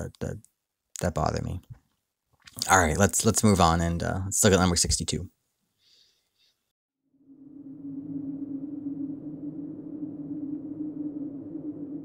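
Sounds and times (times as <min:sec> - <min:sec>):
low grainy drone: 0:07.2 - 0:12.0.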